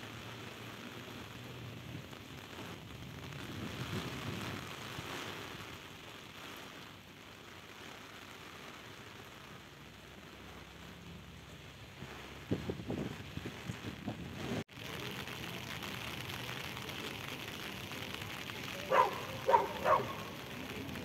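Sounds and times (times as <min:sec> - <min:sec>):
rain on flooded street: 0:00.0 - 0:21.0.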